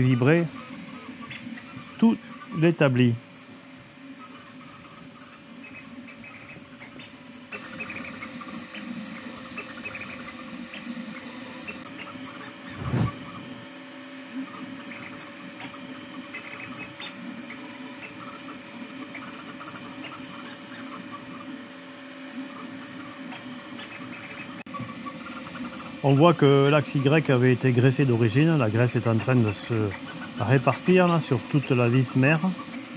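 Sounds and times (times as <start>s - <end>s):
fans humming: 0.0s - 32.9s
stepper motors whining: 0.0s - 32.9s.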